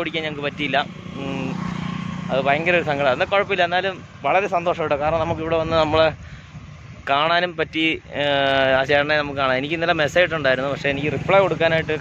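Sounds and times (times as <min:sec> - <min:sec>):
man speaking: 0:00.0 - 0:01.7, 0:02.3 - 0:06.2, 0:07.1 - 0:12.0
vehicle engine humming: 0:00.0 - 0:12.0.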